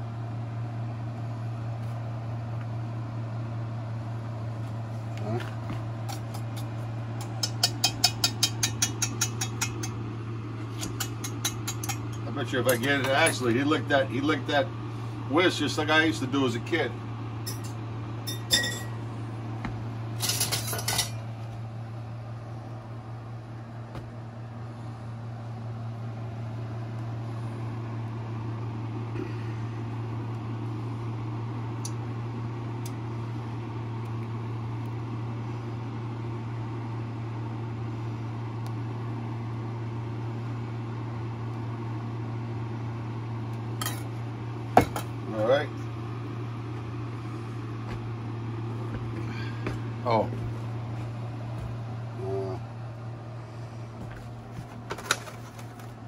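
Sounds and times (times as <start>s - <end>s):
low hum: 0.0s - 56.0s.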